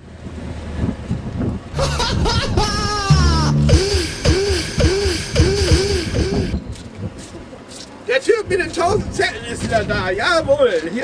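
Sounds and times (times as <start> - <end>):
music jingle: 1.8 - 2.2, 3.0 - 6.5.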